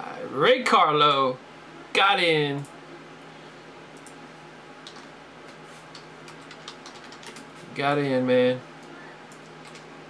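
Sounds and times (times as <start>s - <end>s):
computer keyboard typing: 4.8s - 5.1s, 5.9s - 7.5s, 9.3s - 9.9s.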